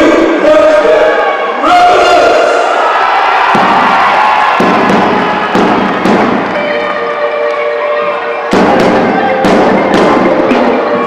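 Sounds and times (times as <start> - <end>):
crowd noise in a hall: 0.0 - 11.0
drum beats: 3.5 - 11.0
marching band playing: 3.6 - 11.0.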